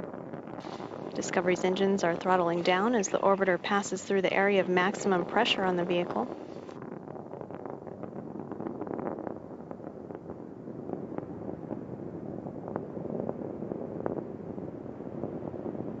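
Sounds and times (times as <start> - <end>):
rocket engine rumble: 0.0 - 16.0
sharp crackles: 0.0 - 16.0.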